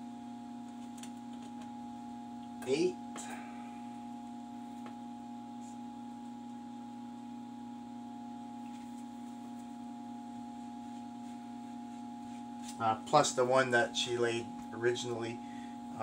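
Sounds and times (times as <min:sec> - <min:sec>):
steady electrical hum: 0:00.0 - 0:16.0.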